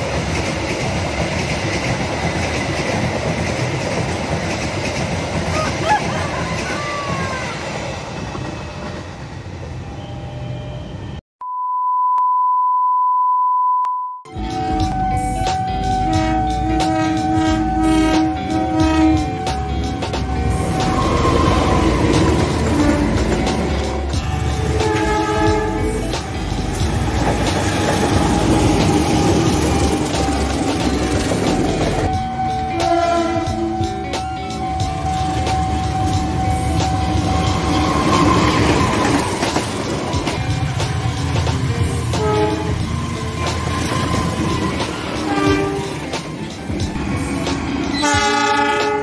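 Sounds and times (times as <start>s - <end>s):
train wheels rumbling on rails: 0.0s - 9.8s, 14.4s - 49.0s
locomotive horn blasts: 14.3s - 19.7s, 24.6s - 26.1s, 32.1s - 37.4s, 42.1s - 42.9s, 45.2s - 46.1s, 47.9s - 49.0s.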